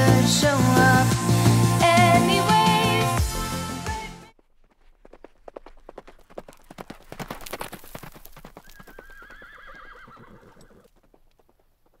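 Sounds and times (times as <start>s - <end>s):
horse hooves clip-clopping: 4.3s - 12.0s
horse whinnying: 8.6s - 10.9s.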